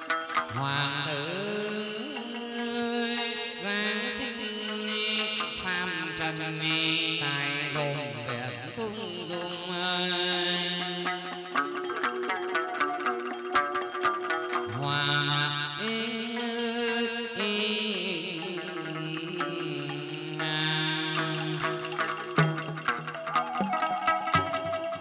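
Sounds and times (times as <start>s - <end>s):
plucked lute: 0.0s - 25.0s
bamboo flute: 7.1s - 16.8s, 18.4s - 25.0s.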